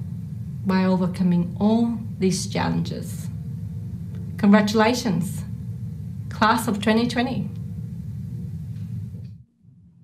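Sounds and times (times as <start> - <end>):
faint hum: 0.0 - 10.0
low room noise rumble: 0.0 - 10.0.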